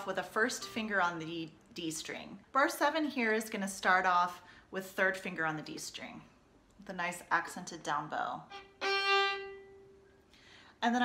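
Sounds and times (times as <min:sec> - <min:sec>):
violin note: 0:08.5 - 0:10.0.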